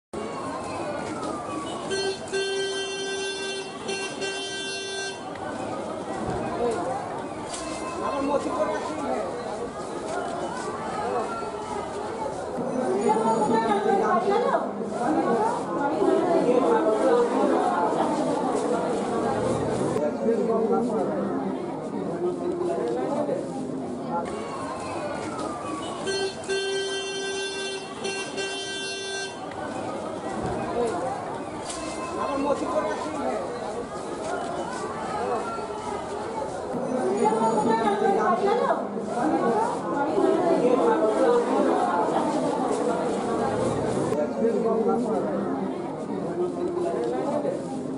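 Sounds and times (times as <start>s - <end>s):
street noise: 0.1s - 47.9s
voices: 0.2s - 47.9s
vehicle horn honking: 1.7s - 5.3s, 25.8s - 29.5s.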